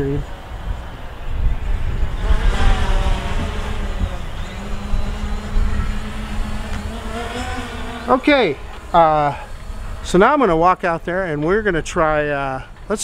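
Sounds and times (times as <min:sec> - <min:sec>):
wind rumble on microphone: 0:00.0 - 0:08.1
drone propellers whirring: 0:00.0 - 0:12.9.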